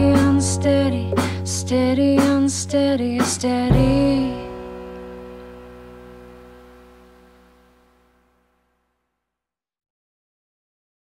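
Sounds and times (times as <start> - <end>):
final chord ringing out: 3.7 - 8.6.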